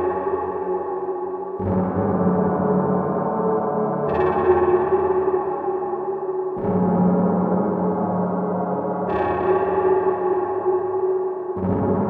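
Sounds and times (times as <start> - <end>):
dark ambient drone music: 0.0 - 12.0.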